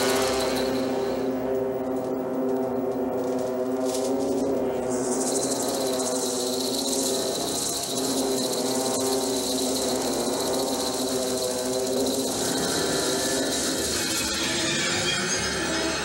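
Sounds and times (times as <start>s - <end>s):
pulsing insect-like trill: 0.0s - 16.0s.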